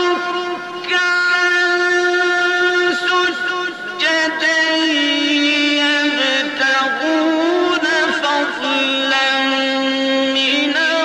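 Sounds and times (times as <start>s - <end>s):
man reciting in long held note: 0.0s - 11.0s.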